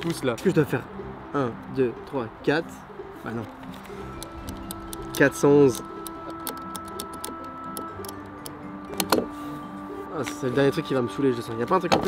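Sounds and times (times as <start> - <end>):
background music: 0.0 - 12.0
lock number wheels clicking: 3.8 - 9.1.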